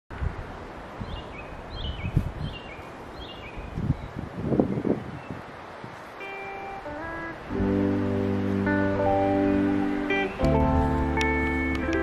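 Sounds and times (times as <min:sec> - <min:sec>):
wind rumbling on microphone: 0:00.1 - 0:06.2, 0:06.8 - 0:12.0.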